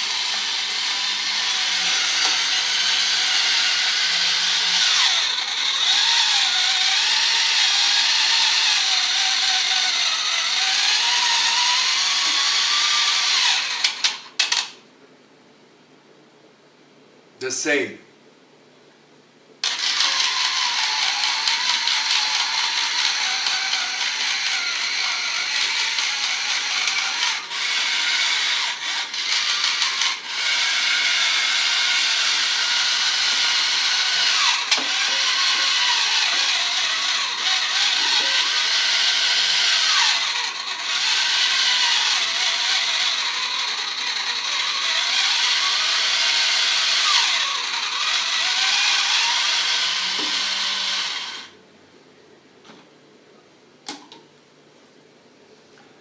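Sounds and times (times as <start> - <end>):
electric can opener whirring: 0.0 - 14.8, 19.6 - 51.6.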